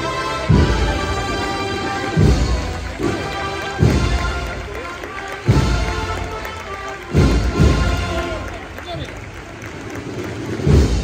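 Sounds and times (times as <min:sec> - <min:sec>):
heavy drum beat: 0:00.4 - 0:06.4, 0:07.0 - 0:08.4.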